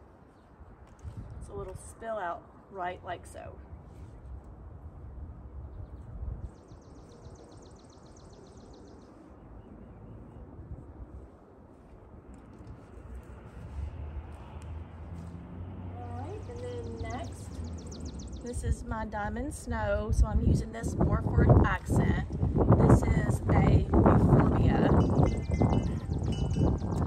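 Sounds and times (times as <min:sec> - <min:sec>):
low steady rumble: 0:09.2 - 0:27.0.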